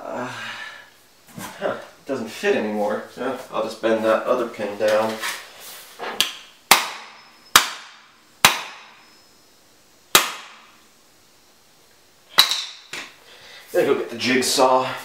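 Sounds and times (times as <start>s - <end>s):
hammer banging on circuit board: 6.7s - 8.8s.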